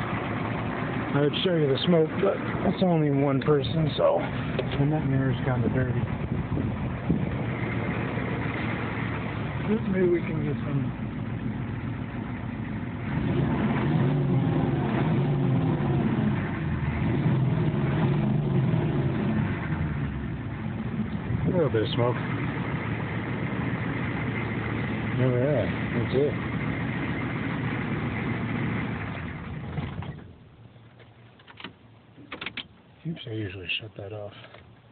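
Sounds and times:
diesel engine idling: 0.0s - 30.9s.

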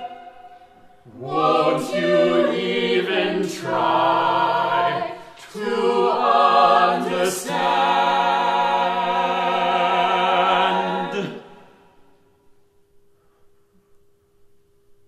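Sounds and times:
choir singing with vibrato: 0.0s - 12.2s.

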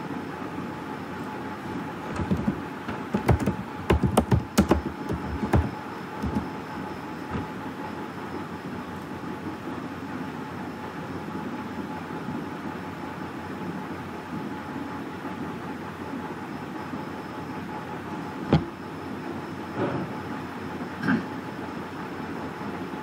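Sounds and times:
steady rumbling background noise: 0.0s - 12.9s.

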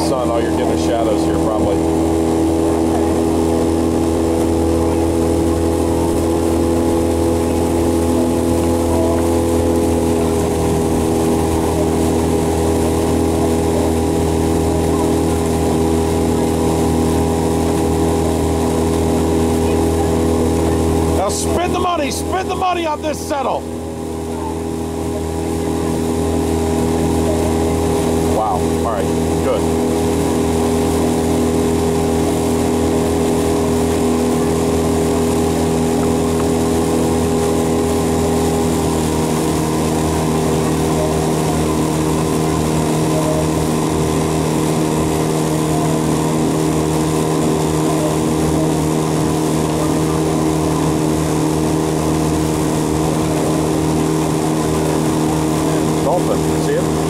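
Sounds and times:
boat motor humming: 0.0s - 57.0s.

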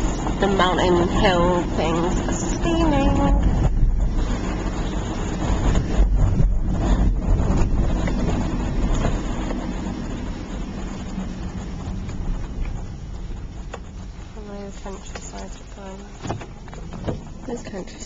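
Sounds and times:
car road and engine rumble: 0.0s - 18.0s.

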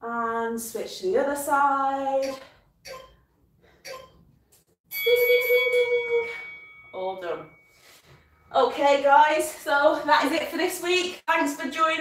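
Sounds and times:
thin high ring: 4.9s - 8.0s.

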